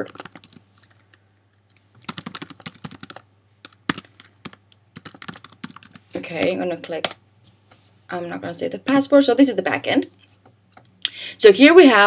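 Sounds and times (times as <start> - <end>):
typing on computer keyboard: 0.0 - 1.2, 2.0 - 6.1.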